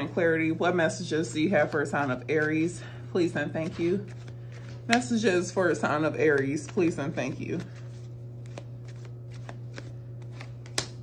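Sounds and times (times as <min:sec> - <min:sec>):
cards being shuffled: 0:03.6 - 0:05.6, 0:06.2 - 0:11.0
card snapping on wooden table: 0:09.4 - 0:11.0.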